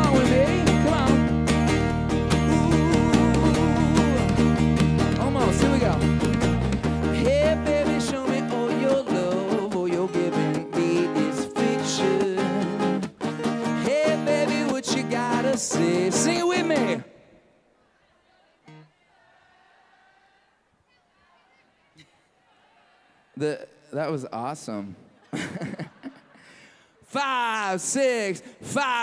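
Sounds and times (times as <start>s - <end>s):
heavy bass: 0.0s - 8.2s
lead voice singing: 0.0s - 13.1s, 13.7s - 17.3s
live pop-rock band playing: 0.0s - 17.0s.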